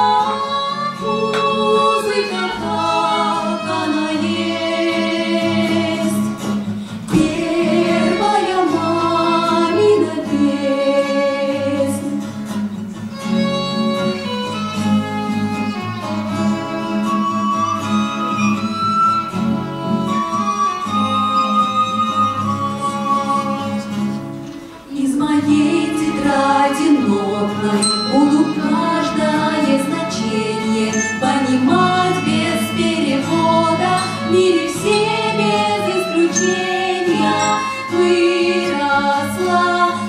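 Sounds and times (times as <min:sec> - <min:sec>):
person singing: 0:00.0 - 0:06.3, 0:07.1 - 0:12.2, 0:24.9 - 0:40.0
acoustic guitar: 0:00.0 - 0:40.0
violin playing: 0:00.6 - 0:06.2, 0:07.2 - 0:10.5, 0:13.1 - 0:24.2, 0:25.3 - 0:40.0.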